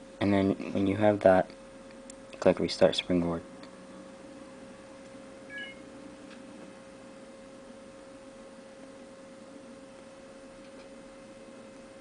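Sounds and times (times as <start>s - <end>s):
thin electrical hum: 0.0s - 12.0s.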